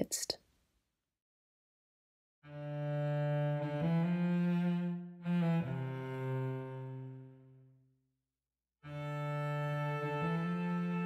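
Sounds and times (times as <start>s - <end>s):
bowed cello chord: 2.5s - 7.8s, 8.8s - 11.0s.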